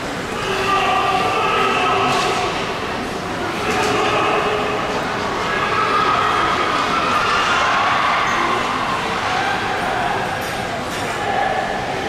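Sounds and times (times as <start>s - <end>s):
echoing indoor din: 0.0s - 12.0s
indistinct voices: 0.0s - 12.0s.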